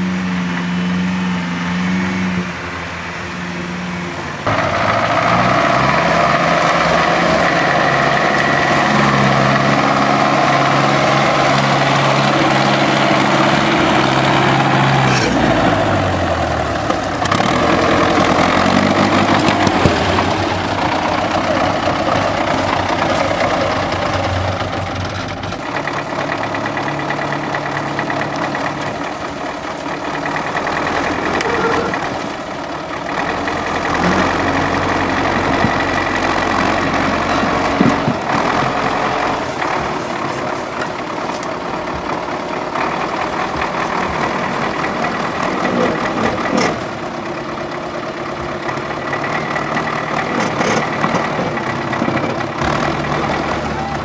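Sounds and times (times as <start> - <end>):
truck engine running and revving: 0.0 - 54.0.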